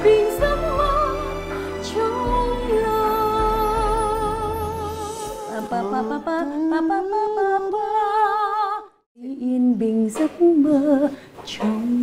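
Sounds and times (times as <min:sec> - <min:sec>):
woman singing unaccompanied: 0:00.0 - 0:12.0.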